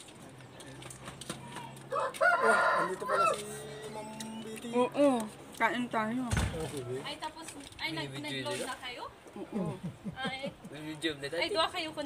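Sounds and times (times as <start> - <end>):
rooster crowing: 1.9 - 3.8.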